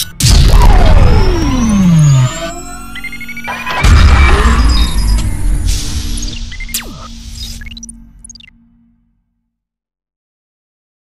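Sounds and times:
electronic tones and beeps: 0:00.0 - 0:08.6
deep booming hit: 0:00.2 - 0:02.3, 0:03.6 - 0:06.4.

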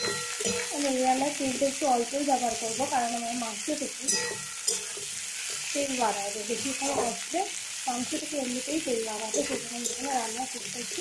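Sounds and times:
onions sizzling in oil: 0:00.0 - 0:11.0.

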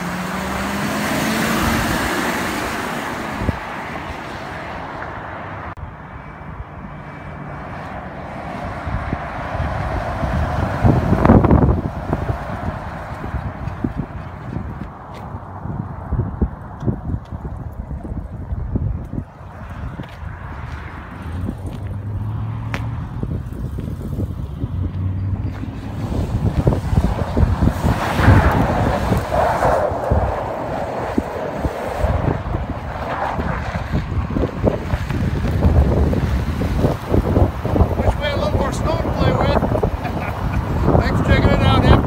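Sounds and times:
wind buffeting microphone: 0:00.1 - 0:04.9, 0:08.2 - 0:42.0.

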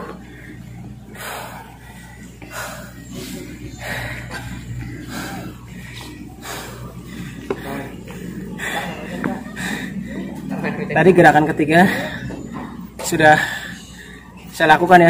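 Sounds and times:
man breathing hard: 0:00.0 - 0:10.5, 0:11.6 - 0:14.6.

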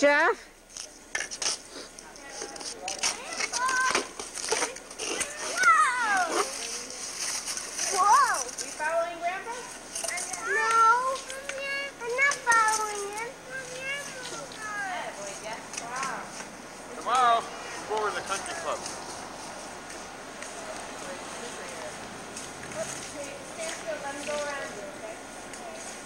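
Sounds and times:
children calling out and squealing: 0:03.0 - 0:08.6, 0:09.4 - 0:15.2.

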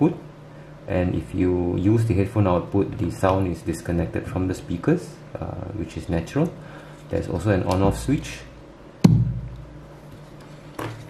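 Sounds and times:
low speaker thump: 0:09.0 - 0:09.6.

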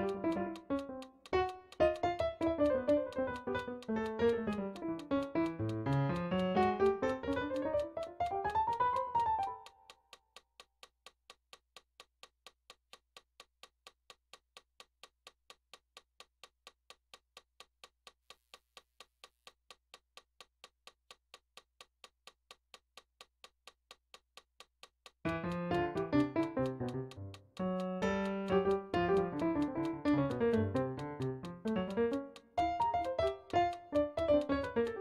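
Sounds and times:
fast atonal digital piano: 0:00.0 - 0:09.7, 0:25.3 - 0:35.0
keyboard notes: 0:00.0 - 0:09.7, 0:25.3 - 0:35.0
metronome clicks: 0:00.0 - 0:18.4, 0:19.2 - 0:35.0.

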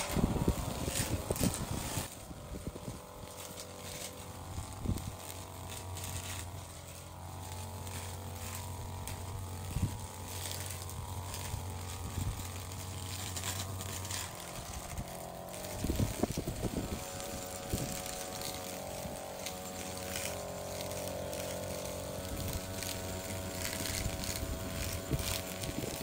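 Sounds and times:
string trimmer engine idling: 0:00.0 - 0:26.0.

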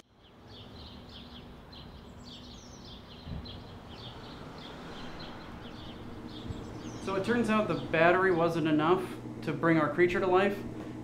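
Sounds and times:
small birds chirping: 0:00.0 - 0:10.4.

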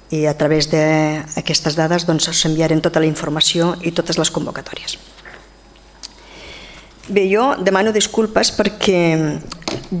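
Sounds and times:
breath in through the nose: 0:06.1 - 0:07.0.

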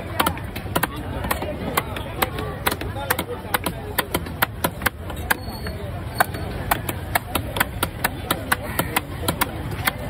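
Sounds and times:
knife chopping fish on wooden block: 0:00.1 - 0:05.4, 0:06.1 - 0:10.0.

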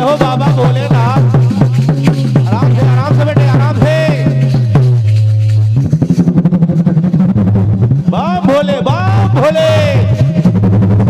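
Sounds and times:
dholak drum rapid strokes: 0:00.0 - 0:11.0.

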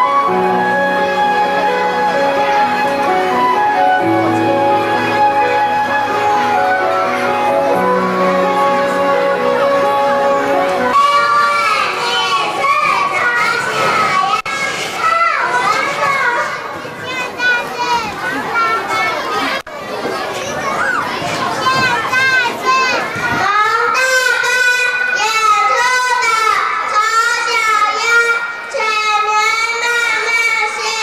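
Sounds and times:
children chattering and calling out: 0:00.0 - 0:31.0
girl singing into a microphone: 0:23.4 - 0:31.0.

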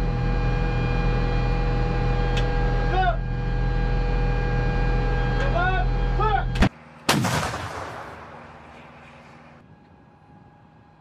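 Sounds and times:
machinery hum: 0:00.0 - 0:11.0
loud artillery shot: 0:07.1 - 0:08.6.

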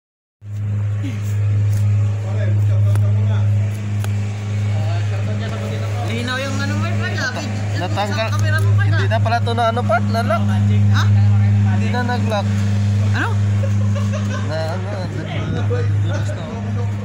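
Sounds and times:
loud steady low hum: 0:00.4 - 0:17.0
people talking: 0:02.0 - 0:17.0.

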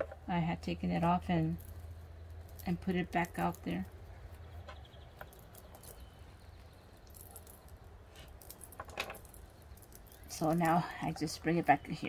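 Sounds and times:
low steady hum: 0:00.0 - 0:12.0
rope rustling and clicks: 0:01.5 - 0:11.3.

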